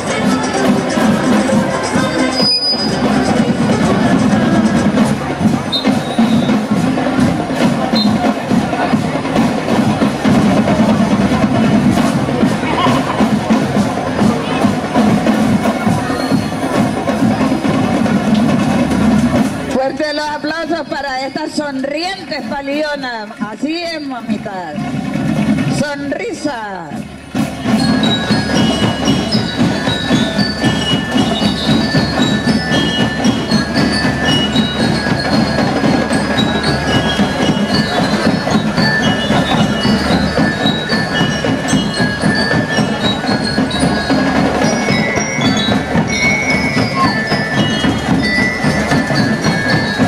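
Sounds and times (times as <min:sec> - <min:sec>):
marching band playing: 0:00.0 - 0:50.0
marching drums beating: 0:00.0 - 0:50.0
bell lyre melody: 0:27.4 - 0:50.0.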